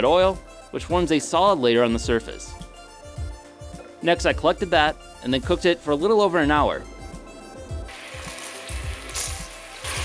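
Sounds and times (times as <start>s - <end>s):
music with a low beat: 1.9s - 10.0s
coconut milk bubbling and sizzling: 7.9s - 10.0s.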